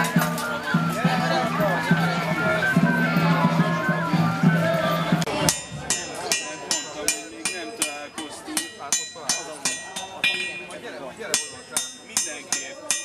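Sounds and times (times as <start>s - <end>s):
music: 0.0s - 13.0s
hammer striking metal on anvil: 5.3s - 13.0s.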